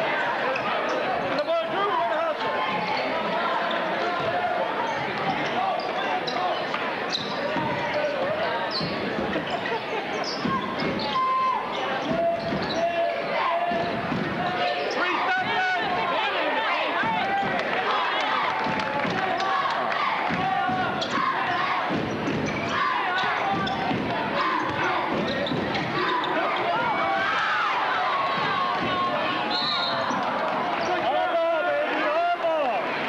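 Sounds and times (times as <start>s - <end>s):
players and crowd voices: 0.0s - 33.0s
shoe squeaks: 4.9s - 13.0s, 21.0s - 26.7s.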